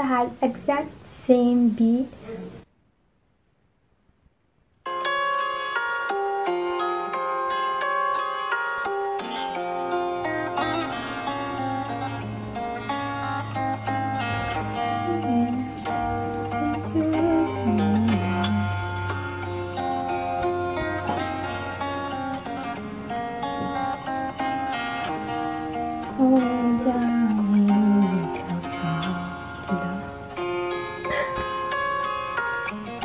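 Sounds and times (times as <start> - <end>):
fingerstyle acoustic guitar: 4.9 - 33.0.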